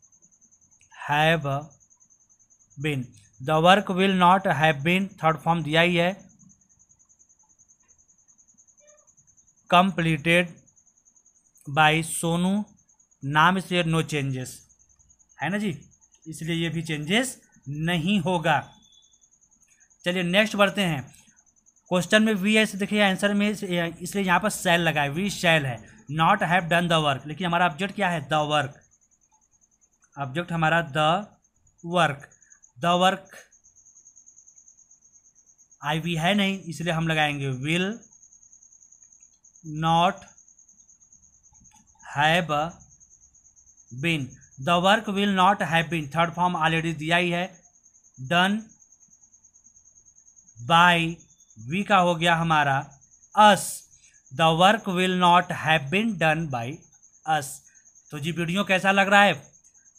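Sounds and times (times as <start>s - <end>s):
cricket chirping: 0.0s - 59.9s
insect trilling: 0.0s - 59.9s
man's voice: 21.9s - 28.7s, 48.2s - 48.6s, 50.6s - 52.8s.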